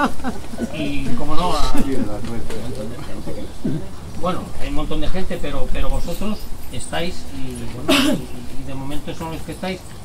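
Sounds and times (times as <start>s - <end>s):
quiet voices: 0.0s - 9.9s.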